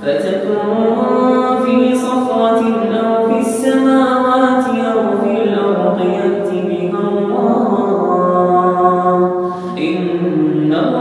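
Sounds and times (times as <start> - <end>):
person reciting melodically: 0.0 - 11.0.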